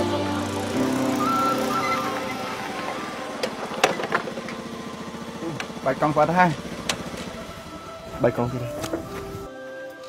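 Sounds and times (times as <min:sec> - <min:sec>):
music: 0:00.0 - 0:03.0, 0:07.2 - 0:10.0
small motorcycle engine running: 0:00.0 - 0:09.5.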